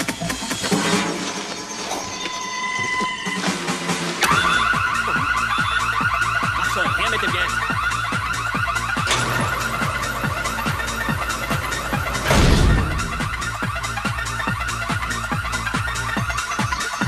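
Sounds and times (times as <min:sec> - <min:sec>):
alarm bell ringing: 0:04.3 - 0:14.0.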